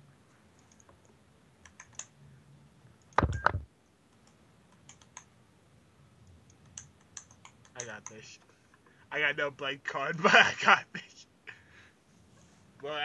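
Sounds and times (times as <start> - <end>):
keyboard and mouse clicks: 0.5 - 2.2, 3.0 - 5.3, 6.2 - 8.9.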